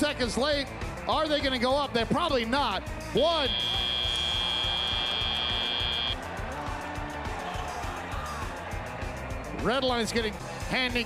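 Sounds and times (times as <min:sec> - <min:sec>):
high buzzer tone: 0:03.3 - 0:06.2.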